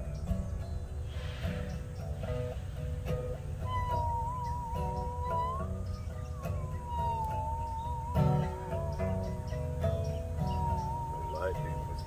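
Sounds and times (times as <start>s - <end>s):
guitar picking rhythmic chords: 0.0s - 12.0s
musical saw played with a bow: 3.6s - 9.7s, 10.4s - 12.0s.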